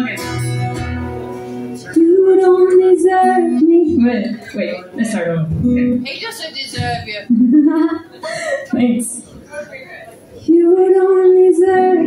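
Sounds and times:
acoustic guitar: 0:00.0 - 0:08.1
woman singing: 0:01.9 - 0:04.5, 0:10.5 - 0:12.0
woman talking: 0:03.5 - 0:12.0.

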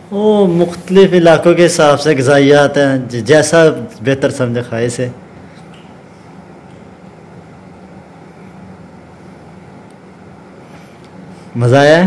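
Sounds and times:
low hum: 0:03.9 - 0:11.6.

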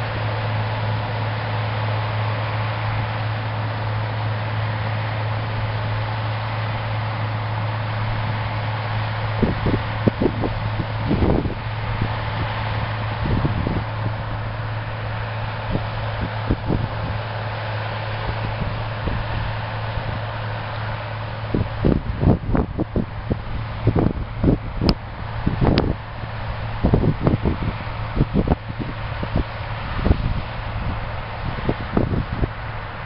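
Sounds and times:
combine harvester running: 0:00.0 - 0:33.0
wind buffeting microphone: 0:04.6 - 0:33.0.

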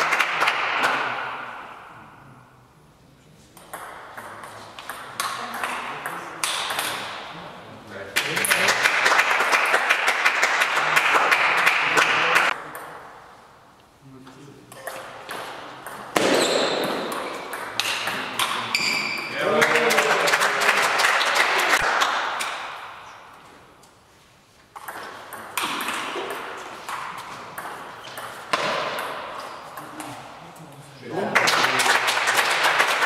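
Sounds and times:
spectators clapping: 0:00.0 - 0:01.2, 0:08.2 - 0:12.6, 0:19.3 - 0:22.9, 0:31.1 - 0:33.0.

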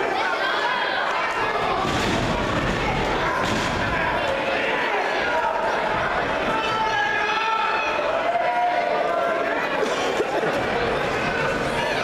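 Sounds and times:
crowd voices and shouting: 0:00.0 - 0:12.0.

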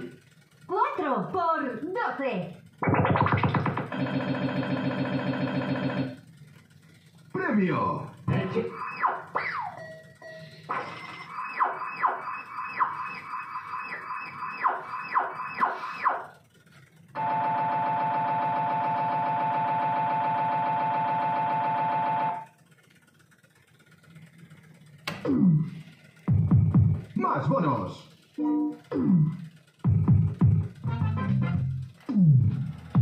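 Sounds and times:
buzzing electronic tone: 0:02.8 - 0:06.2, 0:08.3 - 0:16.4, 0:17.1 - 0:22.5.

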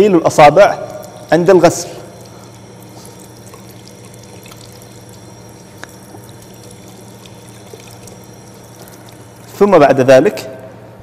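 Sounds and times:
tap water running: 0:00.4 - 0:10.1.

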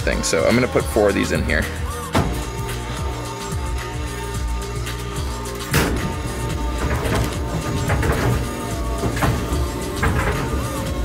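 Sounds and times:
background music with beat: 0:00.0 - 0:11.0.

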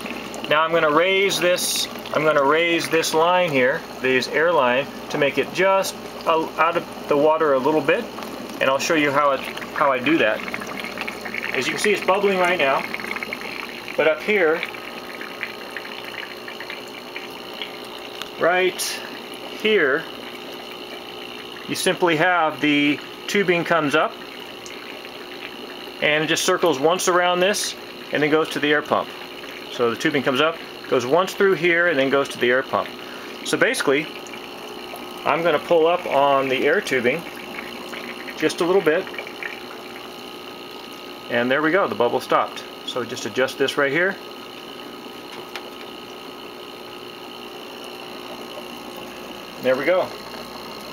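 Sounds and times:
faint pump hum: 0:00.0 - 0:50.9
air bubbling in water: 0:08.1 - 0:41.3, 0:44.3 - 0:50.9.

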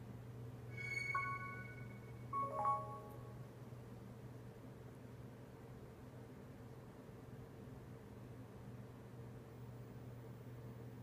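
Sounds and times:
steady low hum: 0:00.0 - 0:05.8
phone startup chime notes: 0:00.8 - 0:03.4.

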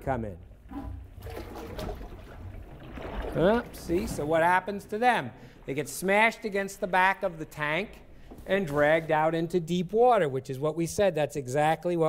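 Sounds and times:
water sloshing in a tank: 0:00.0 - 0:11.8.

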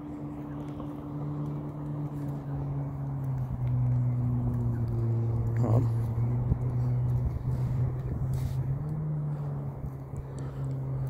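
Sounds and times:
motor engine humming: 0:00.0 - 0:11.0.

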